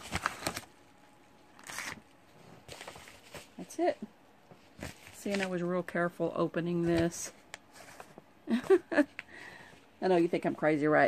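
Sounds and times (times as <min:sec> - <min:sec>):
paper packaging rustling: 0:00.0 - 0:00.8, 0:01.5 - 0:03.7, 0:04.6 - 0:05.7.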